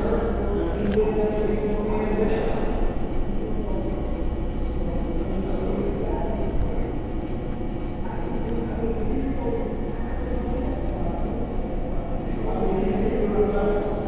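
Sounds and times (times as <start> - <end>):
faint murmured voices: 0.0 - 14.0.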